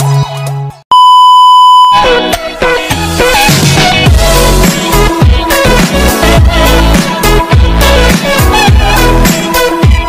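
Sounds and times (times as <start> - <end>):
loud electronic beep: 0.9 - 2.1
electronic music: 1.9 - 10.0.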